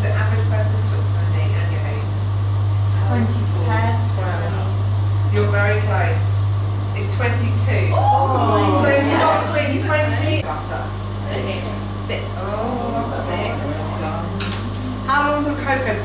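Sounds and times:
steady low hum: 0.0s - 16.0s
people chatting quietly: 7.0s - 16.0s.

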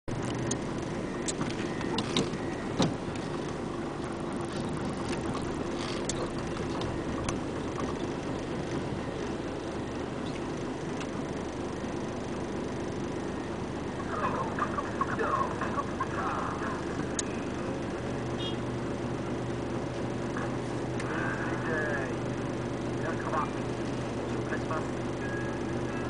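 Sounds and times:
diesel wheel loader engine: 0.0s - 26.0s.

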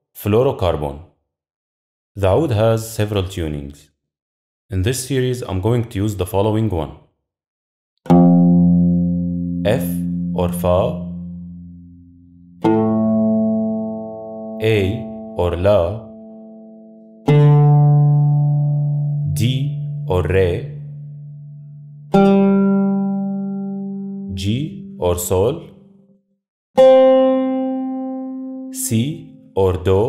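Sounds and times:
oud string plucked: 8.1s - 25.5s, 26.8s - 29.5s.

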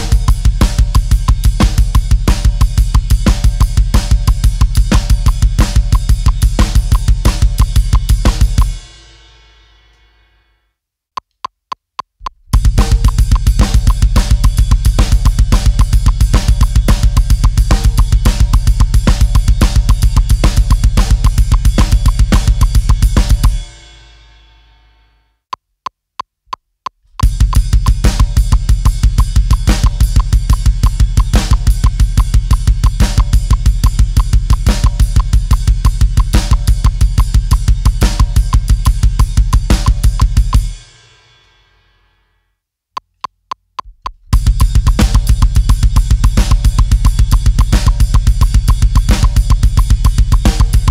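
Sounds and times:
drum kit playing metal beat: 0.0s - 9.4s, 12.2s - 24.1s, 27.1s - 41.4s, 44.2s - 50.9s
count-in clicks: 11.2s - 14.0s, 29.3s - 36.6s, 43.0s - 45.6s.

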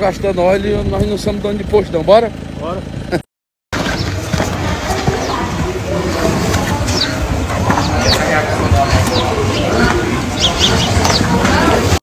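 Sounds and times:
busy outdoor din: 0.0s - 12.0s
high bird chirps: 6.6s - 11.4s.

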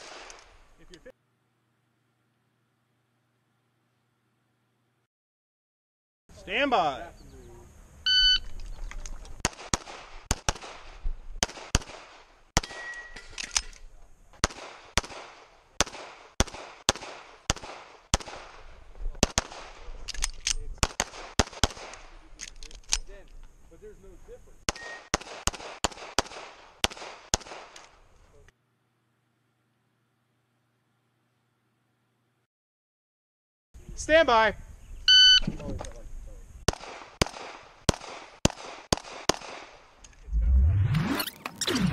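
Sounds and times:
pistol shots: 0.0s - 0.5s, 9.4s - 13.2s, 14.4s - 18.6s, 19.2s - 20.1s, 20.8s - 22.2s, 24.7s - 28.0s, 36.7s - 40.0s
electronic shot-timer beep: 8.1s - 8.5s, 35.1s - 35.4s.

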